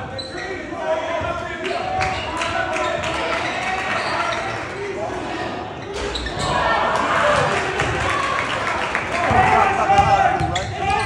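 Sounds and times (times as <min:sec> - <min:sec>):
voices of people: 0:00.0 - 0:11.0.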